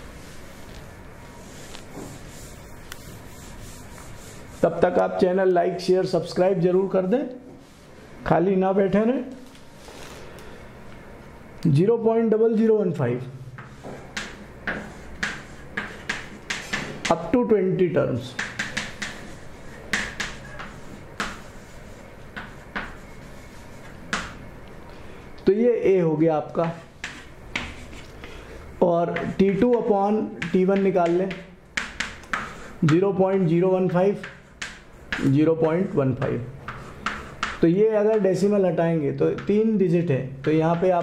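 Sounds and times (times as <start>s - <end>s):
chalk tapping and scraping blackboard: 0.0s - 5.0s, 13.5s - 17.4s, 18.2s - 24.5s, 26.4s - 28.3s, 29.0s - 41.0s
man speaking: 17.1s - 18.4s, 35.2s - 36.6s, 37.6s - 41.0s.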